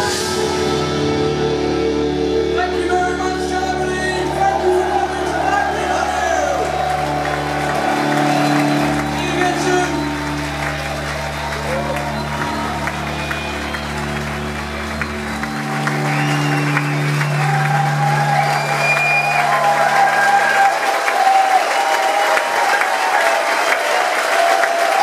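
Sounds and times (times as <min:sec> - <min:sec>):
rock band low chord ringing: 0:00.0 - 0:20.0
audience applauding and cheering: 0:02.7 - 0:25.0.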